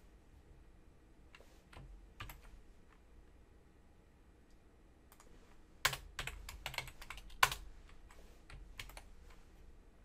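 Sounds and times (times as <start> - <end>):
computer keyboard typing: 1.7 - 2.6, 5.1 - 9.1.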